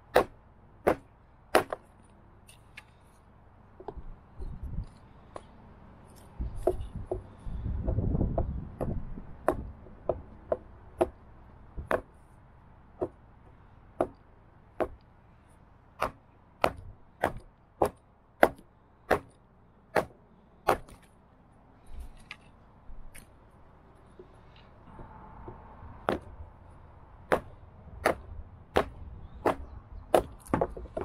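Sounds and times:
hatchet striking log: 0:00.0 - 0:02.9, 0:06.4 - 0:11.2, 0:11.8 - 0:12.2, 0:13.0 - 0:13.2, 0:14.0 - 0:14.2, 0:14.8 - 0:15.0, 0:16.0 - 0:21.1, 0:25.4 - 0:26.4, 0:27.2 - 0:31.0
wooden pieces being handled: 0:21.8 - 0:26.4, 0:29.4 - 0:31.0.

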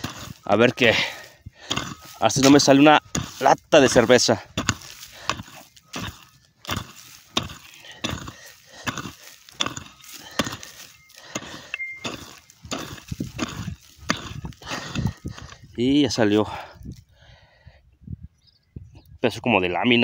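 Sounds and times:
hand pick chopping into dry soil: 0:00.0 - 0:16.4.

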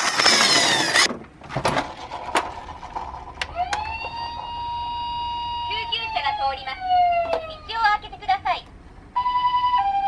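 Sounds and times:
toy electronic siren: 0:03.5 - 0:07.8, 0:09.2 - 0:10.0.

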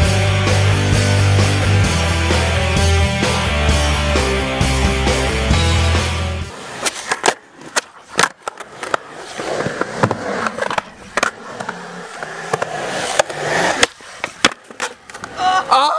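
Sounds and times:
skateboard wheels rumbling on concrete: 0:00.0 - 0:15.7
skateboard clacks and smacks: 0:06.5 - 0:15.6.

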